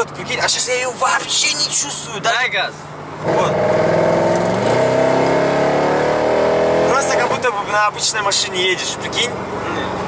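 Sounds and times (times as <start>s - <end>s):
car engine accelerating hard: 3.2s - 7.8s.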